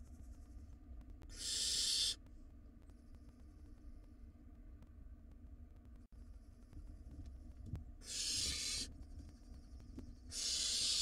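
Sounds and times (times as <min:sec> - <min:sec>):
owl nestlings hissing: 0:01.3 - 0:02.2, 0:08.0 - 0:08.9, 0:10.3 - 0:11.0.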